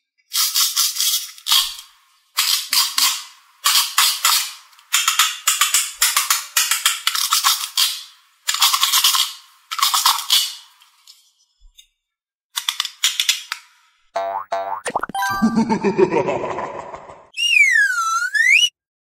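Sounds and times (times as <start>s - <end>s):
plastic toy rattling and clicking: 0.3s - 11.1s, 12.6s - 13.8s.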